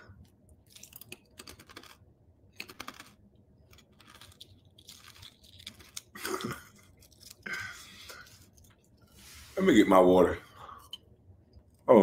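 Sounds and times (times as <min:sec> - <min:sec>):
person chewing crunchy food: 0:00.1 - 0:09.0.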